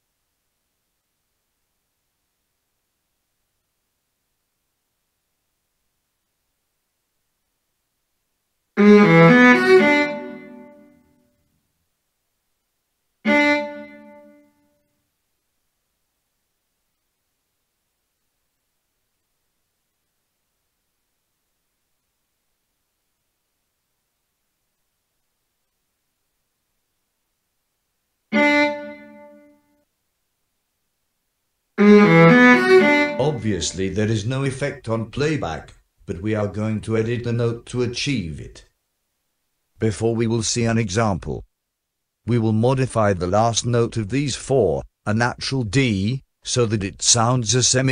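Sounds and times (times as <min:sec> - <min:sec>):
viola notes: 0:08.8 - 0:11.2, 0:13.2 - 0:14.8, 0:28.3 - 0:29.7, 0:31.8 - 0:35.5.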